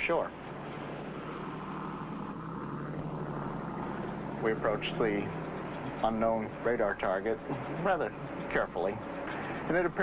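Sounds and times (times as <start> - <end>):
ship engines droning: 0.0 - 10.0.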